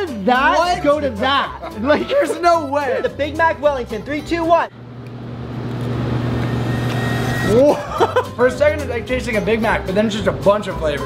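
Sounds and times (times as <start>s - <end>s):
low rumbling hum: 4.7s - 8.2s.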